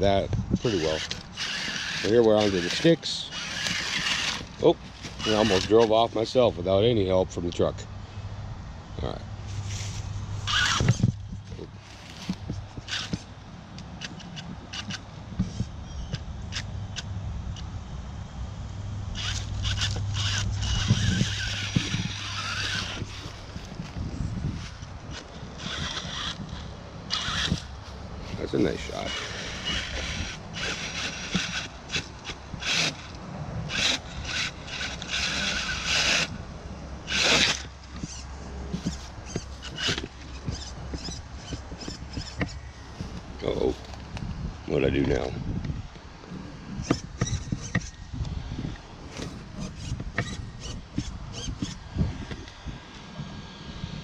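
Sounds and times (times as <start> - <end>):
rc car motor whining: 0.5 - 6.8, 9.5 - 11.2, 11.8 - 13.3, 19.1 - 36.4, 37.0 - 44.0, 48.7 - 54.0
tyres scraping on wood: 0.6 - 6.8, 9.4 - 13.3, 19.2 - 36.4, 37.0 - 44.1, 46.8 - 48.0, 48.6 - 52.5.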